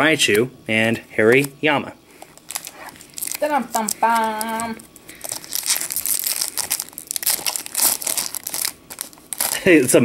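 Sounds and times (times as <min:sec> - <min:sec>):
foil wrapper crinkling and ripping: 0:02.2 - 0:10.0.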